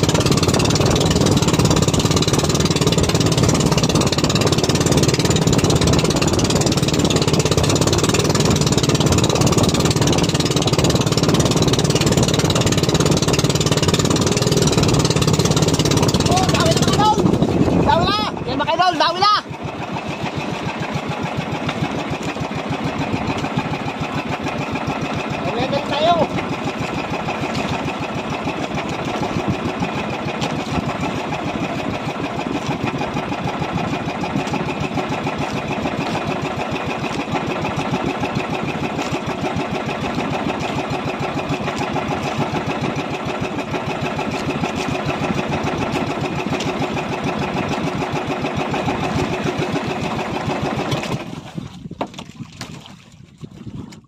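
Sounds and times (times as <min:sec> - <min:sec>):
small boat engine running: 0:00.0 - 0:54.0.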